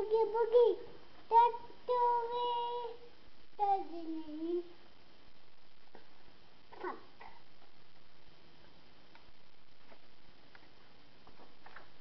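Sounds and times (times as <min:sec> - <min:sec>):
child singing a sliding note: 0:00.0 - 0:04.7.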